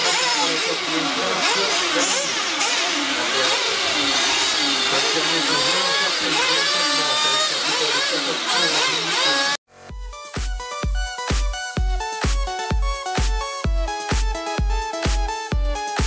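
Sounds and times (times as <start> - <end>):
electric motors whining: 0.0 - 9.6
electronic dance music: 0.0 - 16.0.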